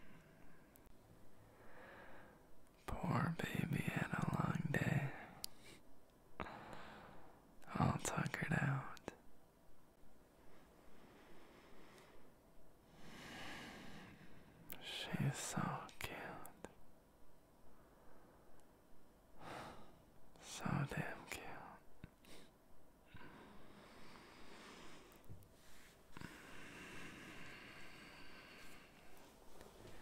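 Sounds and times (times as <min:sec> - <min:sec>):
man whispering: 0:02.8 - 0:05.8, 0:07.6 - 0:09.2, 0:14.7 - 0:16.8, 0:20.3 - 0:22.4.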